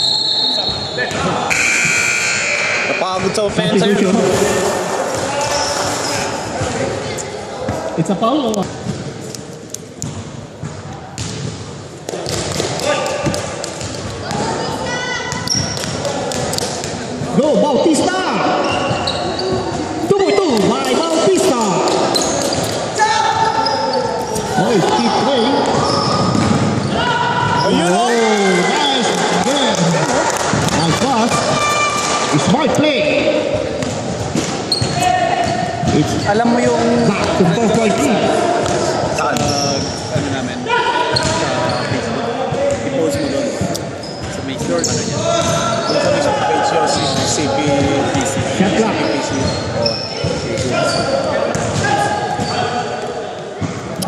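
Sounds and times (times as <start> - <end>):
sneakers squeaking: 0.0 - 3.6, 4.2 - 7.9, 8.6 - 17.4, 18.4 - 32.5, 33.4 - 40.4, 41.0 - 54.0
players calling out: 0.0 - 8.7, 12.3 - 33.8.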